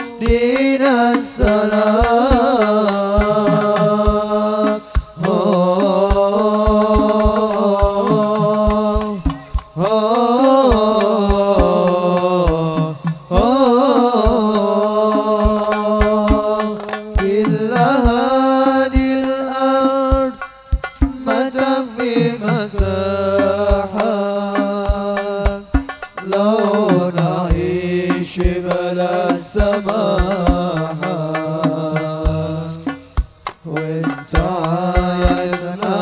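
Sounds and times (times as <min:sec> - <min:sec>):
devotional singing through pa: 0:00.0 - 0:36.0
frame drum strokes: 0:00.0 - 0:36.0
frame drums thumping: 0:20.0 - 0:36.0.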